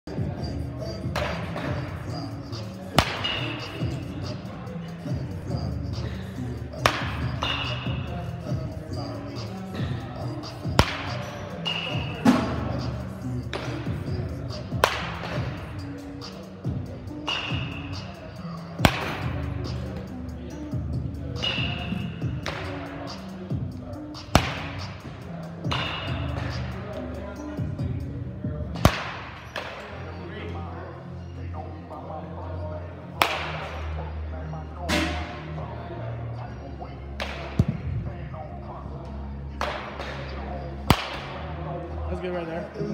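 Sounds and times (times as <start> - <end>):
background music: 0.0 - 42.9
faint chatter: 0.1 - 42.9
baseball bat cracking balls: 3.0 - 3.8, 6.8 - 7.9, 10.6 - 12.5, 14.7 - 15.6, 18.8 - 19.3, 24.2 - 25.0, 28.8 - 29.8, 33.2 - 33.6, 39.6 - 40.2, 40.9 - 41.4.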